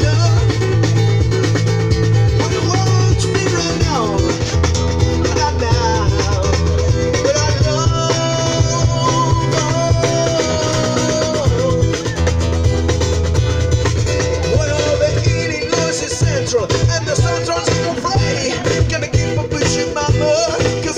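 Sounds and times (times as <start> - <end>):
person singing: 0.0 - 1.0, 2.3 - 12.4, 13.9 - 20.9
guitar: 0.0 - 20.9
steady bass line: 0.0 - 20.9.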